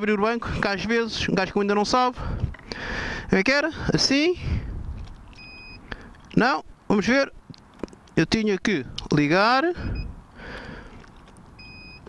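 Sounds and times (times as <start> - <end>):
short electronic beep: 5.4 - 5.8, 11.6 - 12.0.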